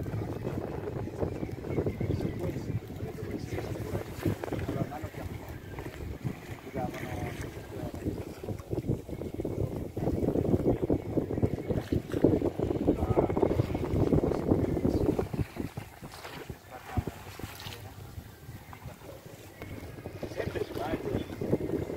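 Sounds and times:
wind buffeting microphone: 0.0 - 21.9
muffled voices: 0.4 - 11.9, 12.8 - 21.9.

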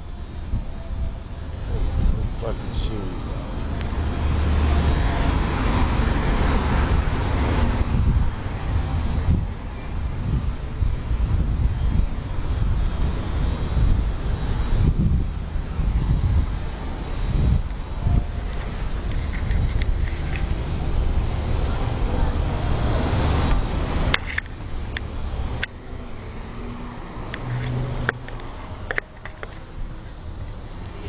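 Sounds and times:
wind rumble on microphone: 0.0 - 31.0
vehicle passing: 2.4 - 9.5, 12.6 - 29.7.

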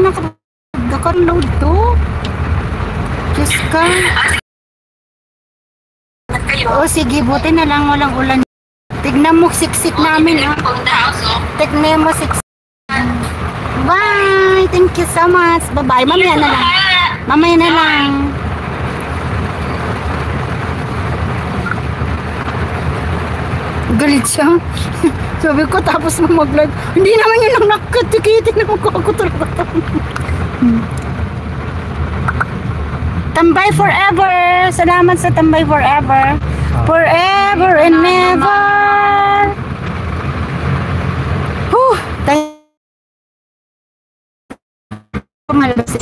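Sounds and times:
vehicle engine rumble: 0.0 - 4.4, 6.3 - 42.6.

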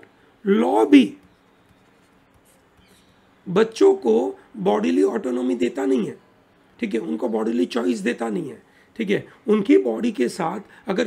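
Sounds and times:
stylus scratching on tablet: 0.6 - 3.4.

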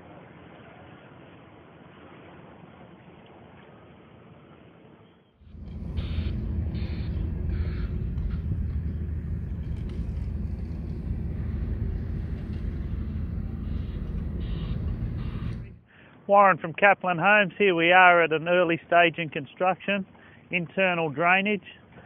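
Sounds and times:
faint outdoor noise: 0.0 - 22.0
loud steady low rumble: 5.4 - 15.8.

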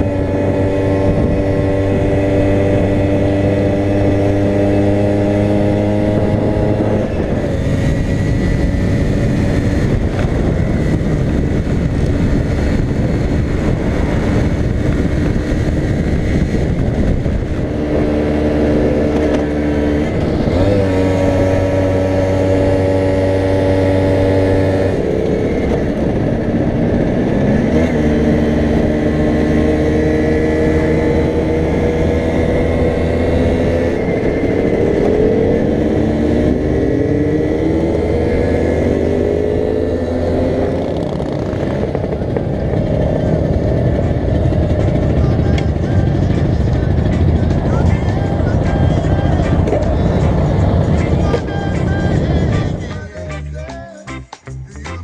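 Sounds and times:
wind on microphone: 0.0 - 53.1
scooter engine running: 0.0 - 53.5.

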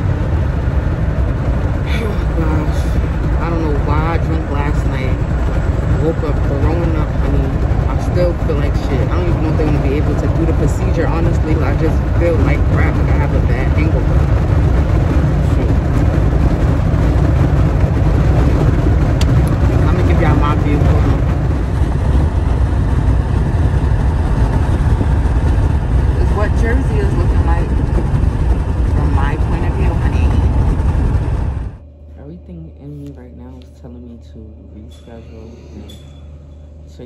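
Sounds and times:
car cabin road noise: 0.0 - 31.8.

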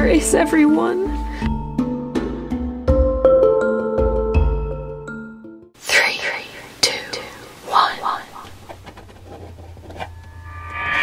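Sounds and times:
person whispering: 5.8 - 8.5.

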